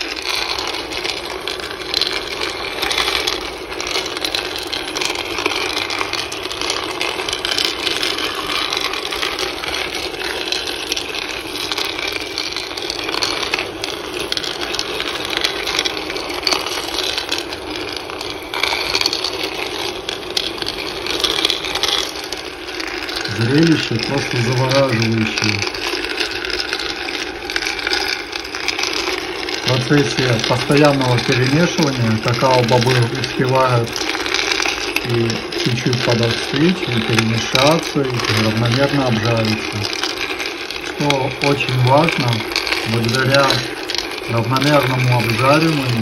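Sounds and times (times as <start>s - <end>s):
beans clattering in roaster pan: 0.0s - 46.0s.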